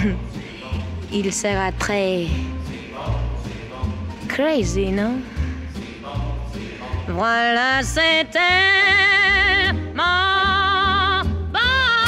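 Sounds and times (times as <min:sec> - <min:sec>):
swing band playing: 0:07.1 - 0:12.0
woman singing with vibrato: 0:07.1 - 0:12.0.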